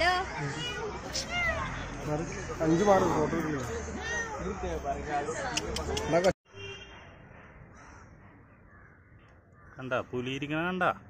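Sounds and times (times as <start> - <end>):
distant bird calls: 6.6 - 10.4.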